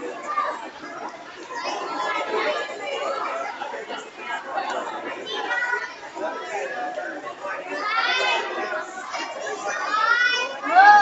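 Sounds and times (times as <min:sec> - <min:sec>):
children shouting: 0:00.0 - 0:03.6, 0:04.4 - 0:11.0.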